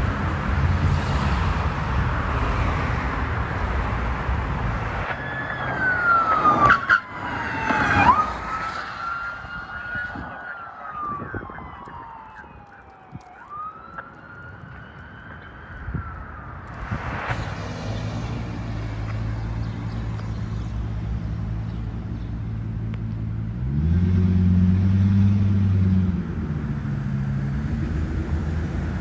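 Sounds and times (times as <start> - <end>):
road traffic noise: 0.0 - 29.0
police siren wailing: 5.0 - 17.3.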